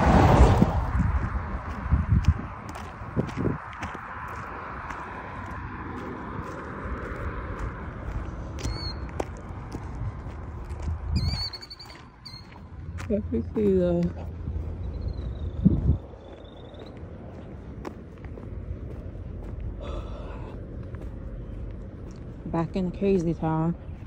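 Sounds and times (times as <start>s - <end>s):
car passing: 0.0s - 24.0s
wind rumble on microphone: 0.0s - 24.0s
bird chirping: 8.6s - 9.1s, 11.2s - 12.6s, 14.6s - 17.1s.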